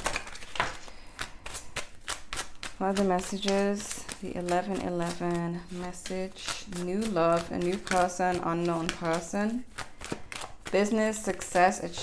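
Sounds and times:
cards being shuffled: 0.0s - 12.0s
woman speaking: 2.8s - 9.7s, 10.7s - 12.0s.

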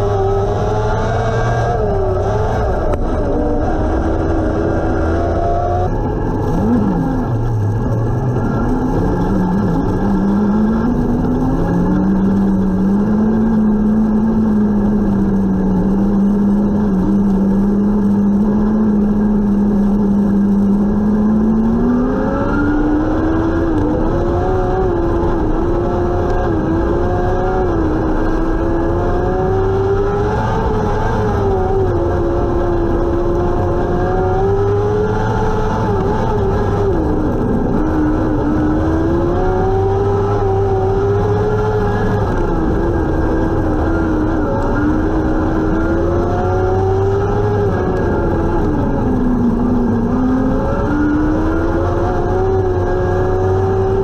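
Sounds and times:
loud road noise: 0.0s - 54.0s
race car engine running hard: 0.0s - 54.0s.

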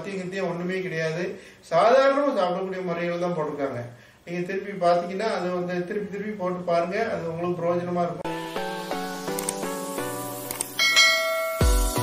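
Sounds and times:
background music: 8.1s - 12.0s
bright bell chime: 10.8s - 12.0s
heavy bass beat: 11.0s - 12.0s.

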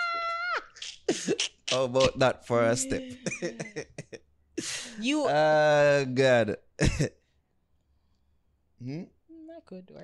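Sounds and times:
person laughing: 0.0s - 4.9s
person coughing: 6.8s - 7.2s.

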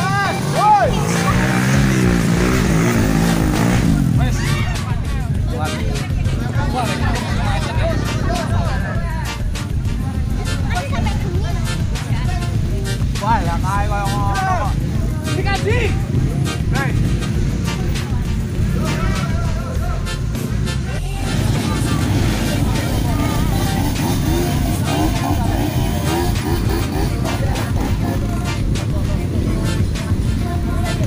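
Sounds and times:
crowd chattering: 0.0s - 31.0s
dirt bike engines droning: 0.0s - 31.0s.

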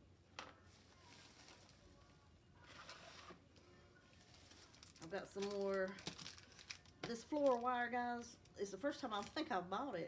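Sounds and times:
soft rustle: 0.6s - 6.8s.

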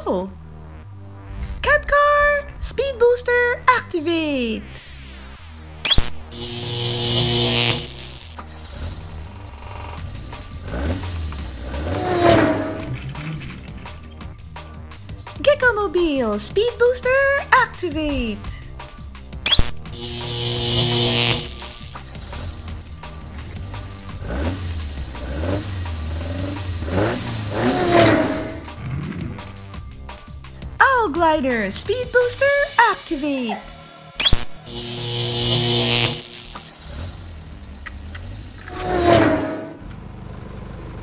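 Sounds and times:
high electronic whine: 5.8s - 8.4s, 19.5s - 22.0s, 34.2s - 36.7s
loud buzzing hum: 5.9s - 8.4s, 19.5s - 22.1s, 34.2s - 36.7s.

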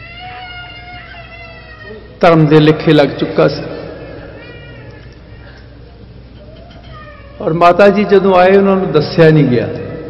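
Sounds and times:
faint high wavering cry: 0.0s - 2.2s, 4.2s - 5.6s, 6.4s - 7.5s.

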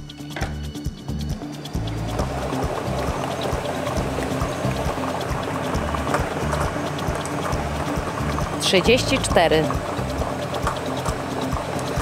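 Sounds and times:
studio background music: 0.0s - 12.0s.

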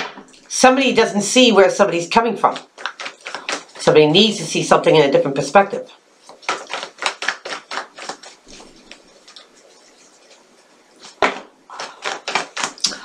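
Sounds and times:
cards being shuffled: 2.5s - 4.0s, 6.2s - 10.4s, 11.0s - 12.9s.

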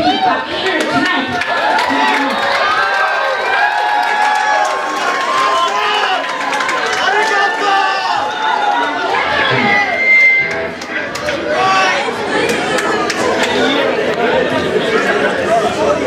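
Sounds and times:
crowd shouting and chattering: 0.0s - 16.0s
high steady tone: 9.5s - 10.9s.

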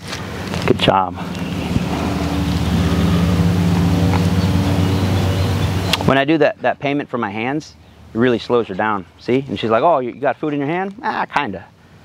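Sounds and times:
engine running steadily: 0.0s - 6.7s.

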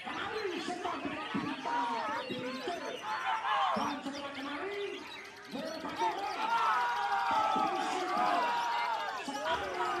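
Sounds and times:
other songbirds: 0.0s - 6.6s
people's voices: 0.0s - 10.0s.

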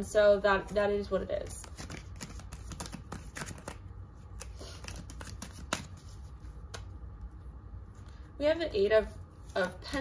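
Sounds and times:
cards being shuffled: 1.5s - 6.9s.

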